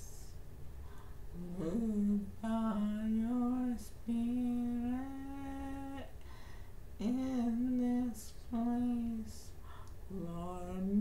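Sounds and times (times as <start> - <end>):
woman humming: 1.3 - 6.1.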